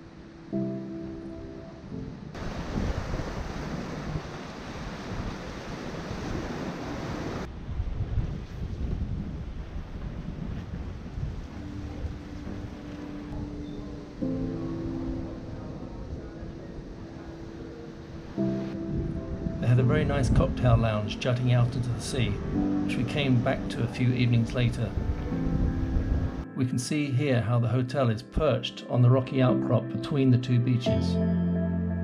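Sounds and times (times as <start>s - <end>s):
music with sustained chords: 0.0s - 2.9s, 10.8s - 32.0s
sea noise: 0.0s - 26.5s
wind noise on microphone: 2.0s - 26.4s.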